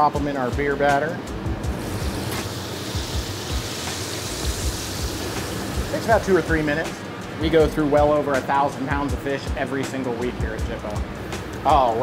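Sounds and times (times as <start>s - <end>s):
fish sizzling in deep fryer oil: 1.6s - 7.3s.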